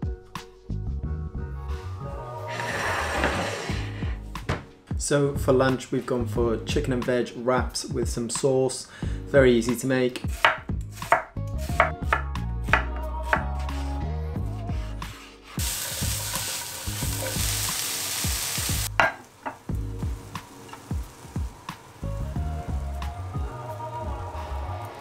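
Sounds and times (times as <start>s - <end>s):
background music with low bass: 0.0s - 25.0s
knife chopping on wooden board: 10.3s - 13.5s
vegetables sizzling in frying pan: 15.6s - 25.0s.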